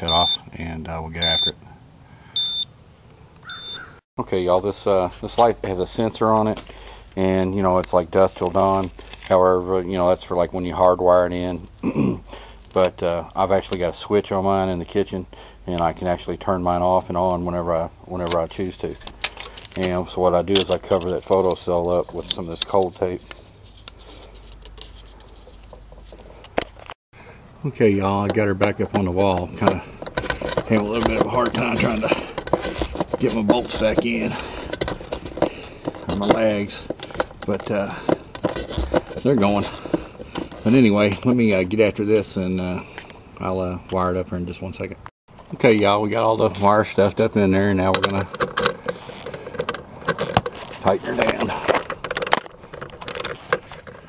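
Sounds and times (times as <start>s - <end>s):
tape crinkling: 18.2s - 26.2s
metallic clicks and knocks: 28.2s - 40.8s, 47.8s - 54.0s.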